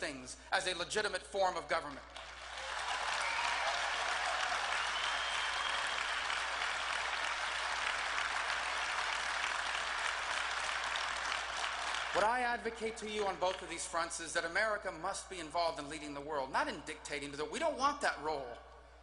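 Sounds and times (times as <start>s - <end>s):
large audience applauding: 2.1s - 12.5s.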